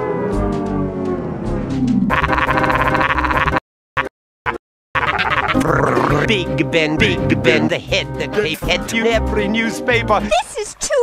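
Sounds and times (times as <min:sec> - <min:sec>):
distorted warbling croak: 0:00.0 - 0:06.3.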